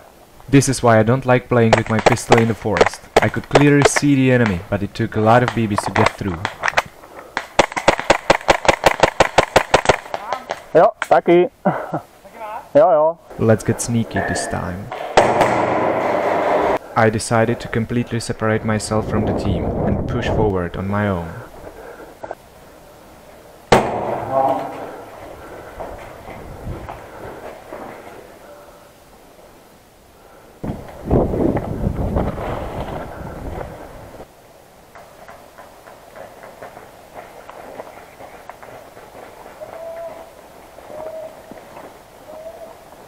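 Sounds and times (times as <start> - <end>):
sharp bang: 14.9 - 16.8, 23.7 - 24.8
footsteps rustling through grass: 36.2 - 43.0.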